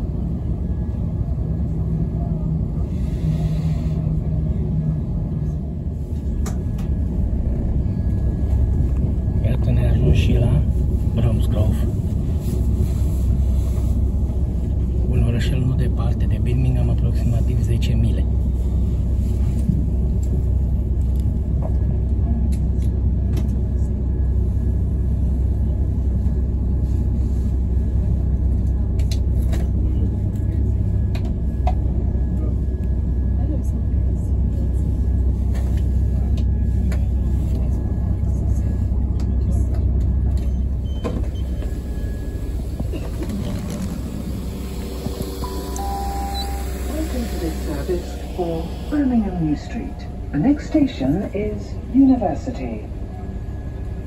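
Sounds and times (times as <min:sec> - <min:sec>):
train running rumble: 0:00.0 - 0:54.0
short electronic tones: 0:45.4 - 0:47.0.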